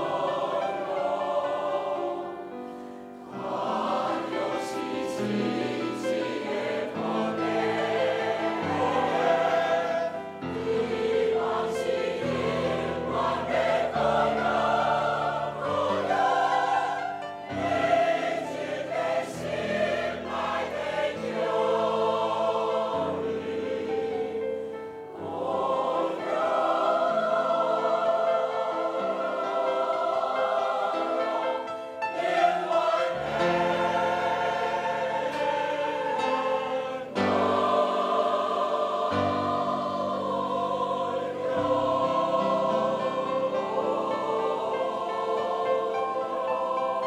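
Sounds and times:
choir singing in harmony: 0.0 - 47.0.

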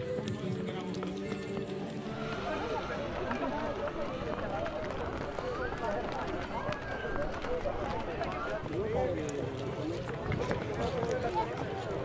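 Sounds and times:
people talking indistinctly: 0.0 - 12.0.

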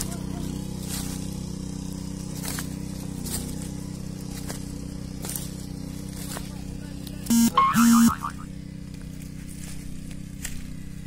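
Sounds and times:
reaper engine droning: 0.0 - 11.0
loud beeps: 7.3 - 8.4
wavering higher tone: 7.3 - 8.5.

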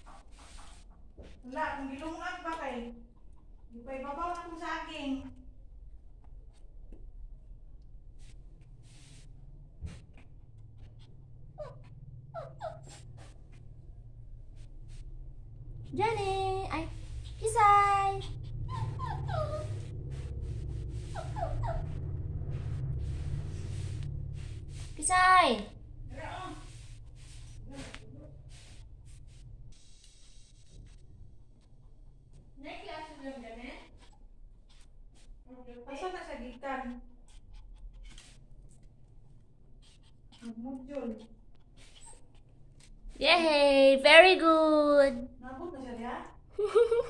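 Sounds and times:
puppy whimpering: 11.0 - 13.4, 17.3 - 19.9, 21.0 - 22.0, 39.8 - 42.5
person speaking: 25.0 - 26.8.

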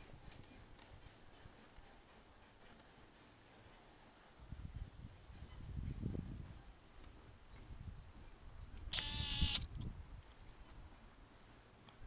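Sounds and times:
wind rumble on microphone: 4.4 - 11.1
camera handling noise: 8.9 - 9.9.

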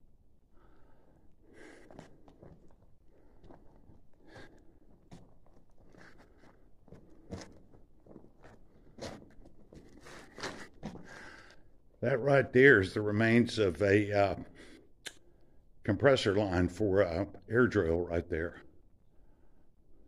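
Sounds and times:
footsteps crunching on loose rock: 1.6 - 11.4.

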